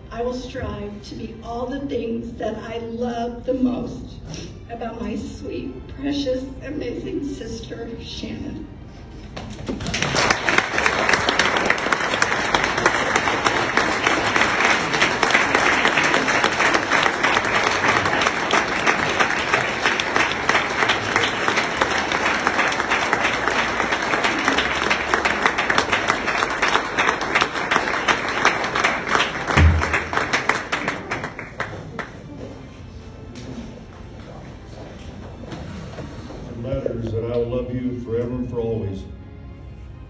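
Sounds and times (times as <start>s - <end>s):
audience applauding: 9.4s - 32.3s.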